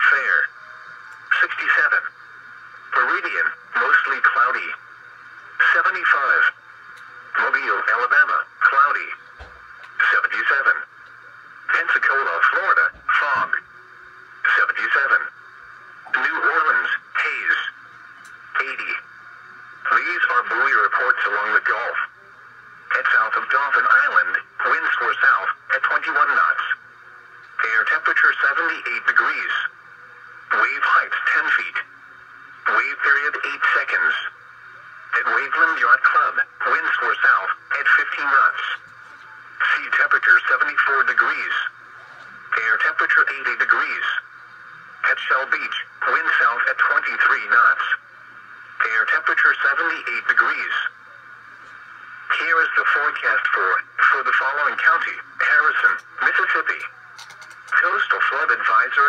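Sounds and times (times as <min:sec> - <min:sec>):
faint steady hum: 0:00.0 - 0:59.0
voice through small radio speaker: 0:00.0 - 0:59.0.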